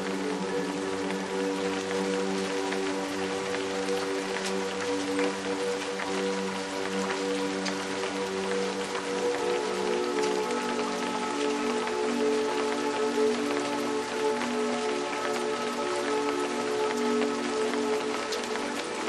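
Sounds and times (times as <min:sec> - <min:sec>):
slow music of held notes: 0:00.0 - 0:19.0
steady rain falling: 0:00.0 - 0:19.0.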